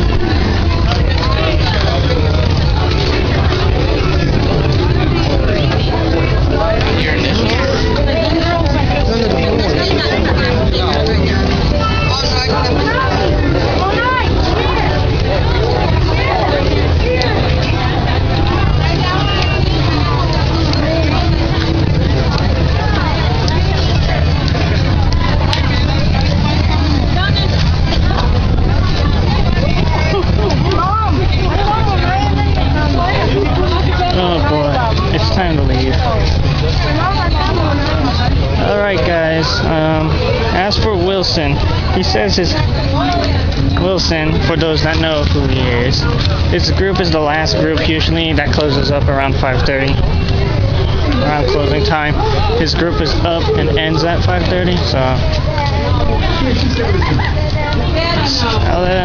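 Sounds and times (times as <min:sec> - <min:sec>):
crowd chatter: 0:00.0 - 0:59.0
steady low rumble: 0:00.0 - 0:59.0.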